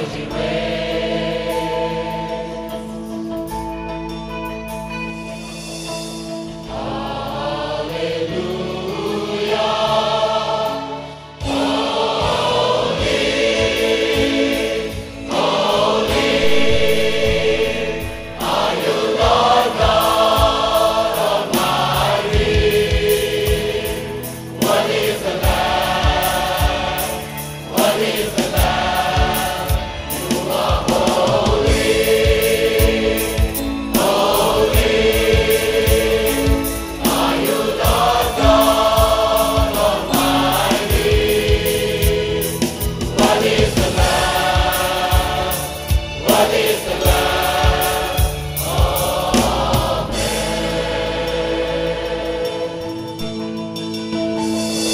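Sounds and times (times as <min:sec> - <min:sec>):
choir singing worship song: 0:00.0 - 0:03.5, 0:06.4 - 0:54.0
instrumental backing: 0:00.0 - 0:54.9
steady beat: 0:15.4 - 0:23.9, 0:24.6 - 0:50.7.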